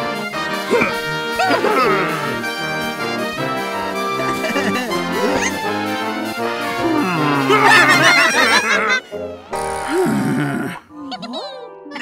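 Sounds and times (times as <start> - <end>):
music: 0.0 - 12.0
cartoon voices laughing: 0.7 - 3.1, 4.2 - 5.8, 6.8 - 9.1, 10.6 - 12.0.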